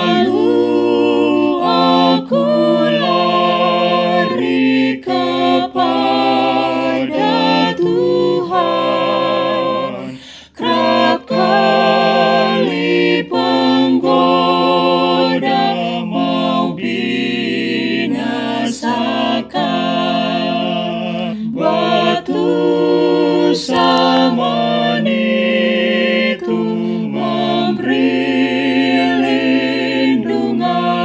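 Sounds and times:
vocal quartet singing a hymn: 0.0 - 31.0
singer's breath: 10.1 - 10.6.

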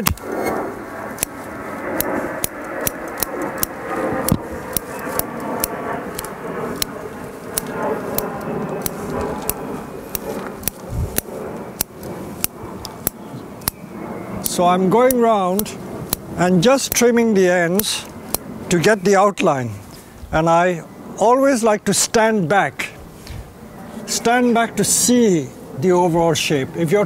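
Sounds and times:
scissors snipping: 0.0 - 0.6, 2.0 - 13.8
steady background noise: 0.0 - 27.0.

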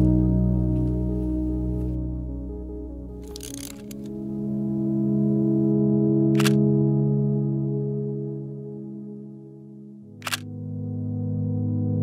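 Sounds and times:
ambient music chords: 0.0 - 12.0
camera shutter click: 3.2 - 4.1, 6.4 - 6.6, 10.2 - 10.5
camera winding noise: 3.2 - 4.1, 6.4 - 6.6, 10.2 - 10.4.

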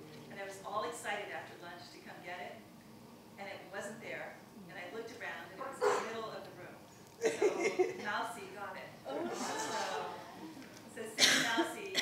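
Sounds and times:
woman talking: 3.4 - 6.8, 7.9 - 10.2, 10.9 - 12.0.

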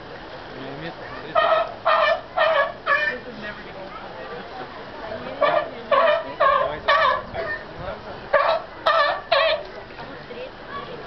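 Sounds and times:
seal barking: 1.3 - 3.2, 5.4 - 7.7, 8.3 - 9.6.

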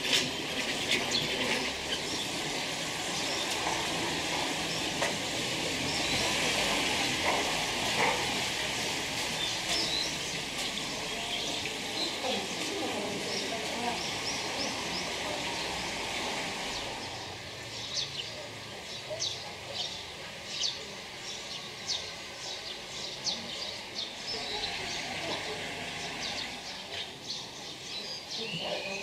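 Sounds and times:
small birds chirping: 0.1 - 29.0.

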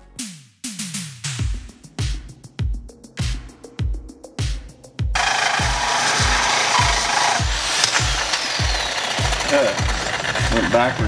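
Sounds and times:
background music with thumping beat: 0.0 - 11.0
handheld power tool running: 5.2 - 11.0.

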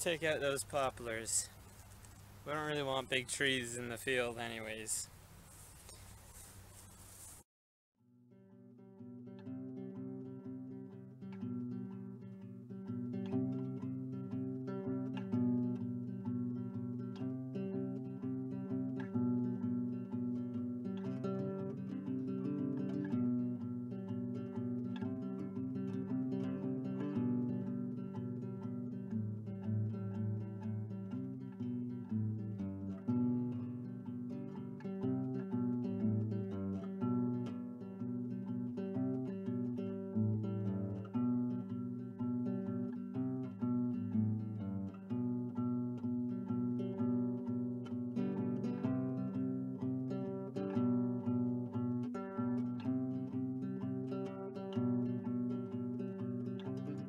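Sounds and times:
plucked acoustic guitar: 0.0 - 5.1, 8.1 - 57.0.

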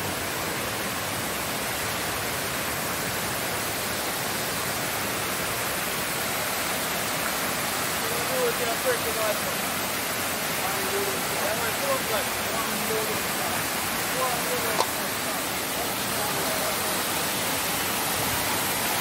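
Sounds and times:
waterfall rushing over rocks: 0.0 - 19.0
person's voice: 8.0 - 9.6, 10.6 - 17.6.

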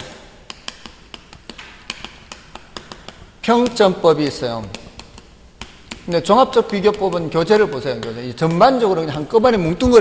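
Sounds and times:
chalk tapping on chalkboard: 0.0 - 10.0.

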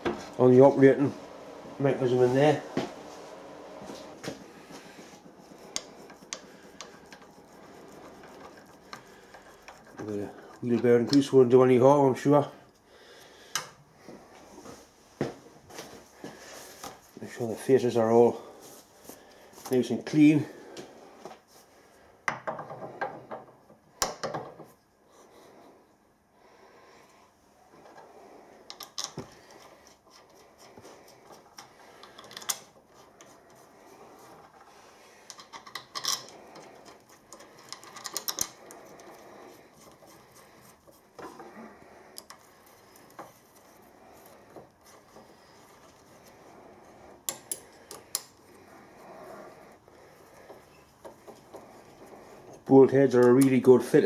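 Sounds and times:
soft handling noise: 14.0 - 21.8
metal parts clicking and clinking: 35.2 - 39.1.

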